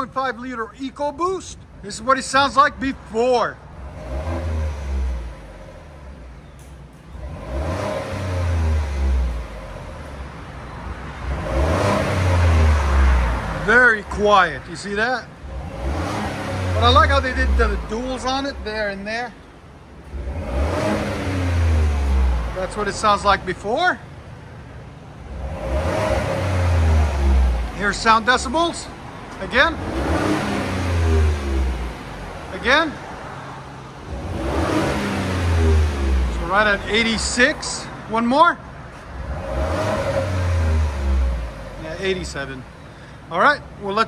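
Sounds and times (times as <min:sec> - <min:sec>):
truck engine idling and revving: 0:00.0 - 0:44.0.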